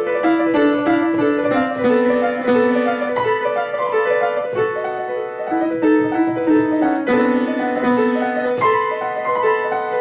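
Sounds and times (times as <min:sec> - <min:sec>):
grand piano classical piece: 0:00.0 - 0:10.0.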